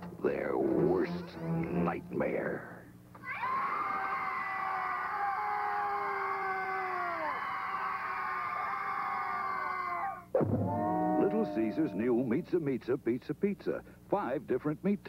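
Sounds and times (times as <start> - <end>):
people screaming in horror: 3.2 - 12.6.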